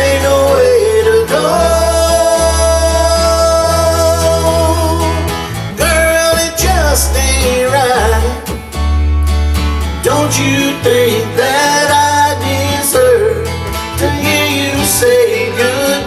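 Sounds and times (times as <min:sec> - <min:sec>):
man singing: 0:00.0 - 0:08.6, 0:10.0 - 0:16.0
acoustic guitar: 0:00.0 - 0:16.0
electric bass notes: 0:00.0 - 0:16.0.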